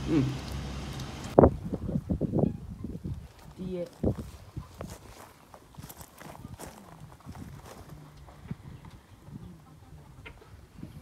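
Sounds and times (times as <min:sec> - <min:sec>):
footsteps crunching on gravel: 0:03.2 - 0:08.4
chickens clucking: 0:08.0 - 0:11.0.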